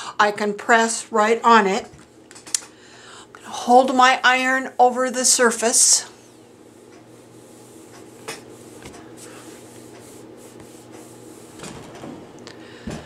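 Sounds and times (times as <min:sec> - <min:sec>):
iron rubbing on paper towel: 0:03.6 - 0:11.8.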